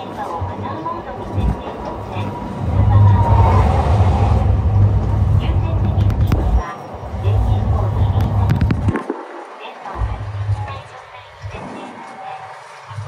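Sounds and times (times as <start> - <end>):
tram interior rumble: 0.0 - 13.0.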